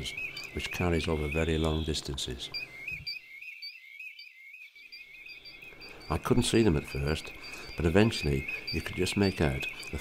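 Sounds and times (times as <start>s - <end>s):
distant flock of birds whistling: 0.0s - 10.0s.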